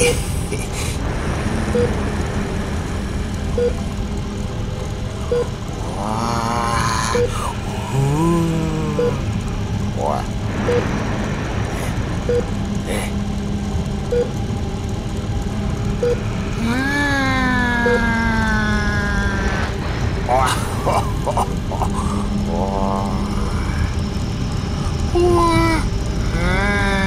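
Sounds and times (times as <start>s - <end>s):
steady low rumble: 0.0s - 27.0s
person exclaiming ooh: 16.6s - 19.7s.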